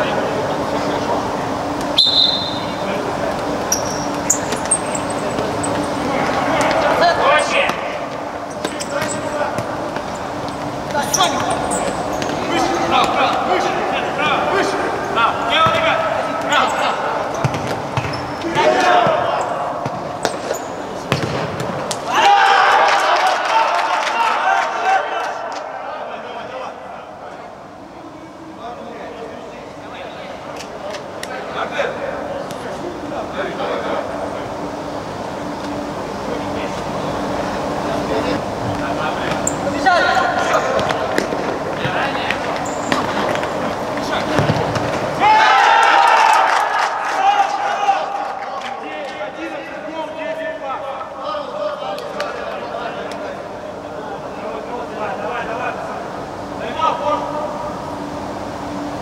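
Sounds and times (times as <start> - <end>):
players shouting: 11.0 - 20.4, 21.9 - 27.2, 41.9 - 49.2
ball kicked and bouncing: 17.4 - 18.2, 21.1 - 21.8.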